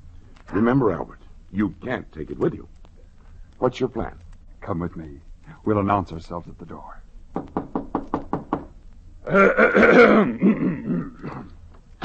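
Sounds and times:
knocking on a door: 7.3 - 8.8.

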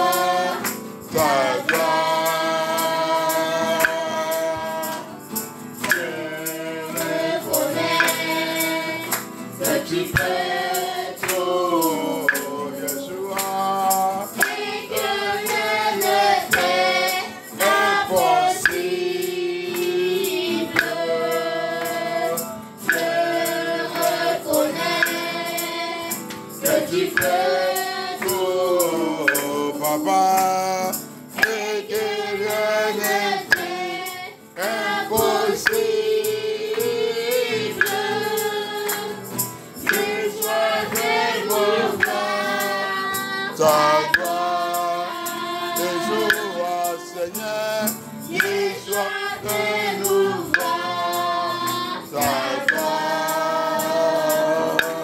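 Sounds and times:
group singing gospel song: 0.0 - 55.0
steady percussion beat: 0.0 - 55.0.

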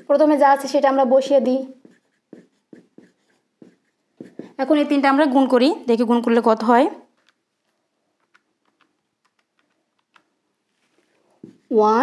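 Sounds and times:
woman's voice: 0.0 - 1.8, 4.5 - 7.1, 11.7 - 12.0
marker pen on whiteboard: 0.0 - 5.5, 7.0 - 12.0.

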